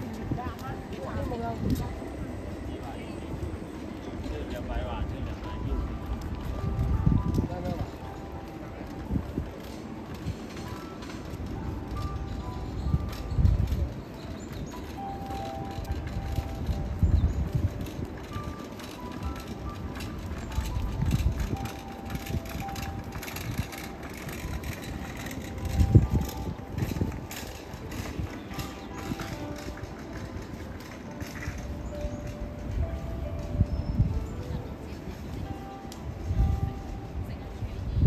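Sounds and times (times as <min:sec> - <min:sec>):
faint melody of held notes: 0:00.0 - 0:38.0.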